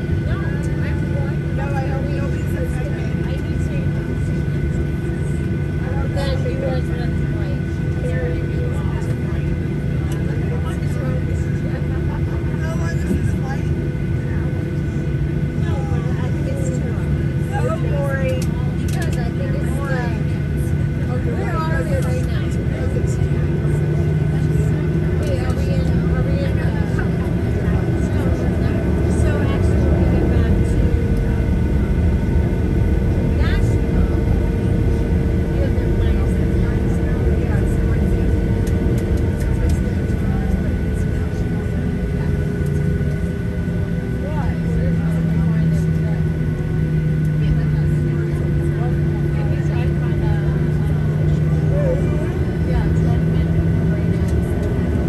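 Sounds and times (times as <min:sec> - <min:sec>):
airplane cabin hum: 0:00.0 - 0:55.0
passenger chatter: 0:00.0 - 0:55.0.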